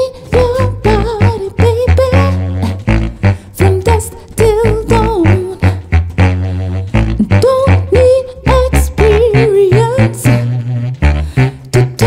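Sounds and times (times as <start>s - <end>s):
saxophone low bass notes: 0.0s - 12.0s.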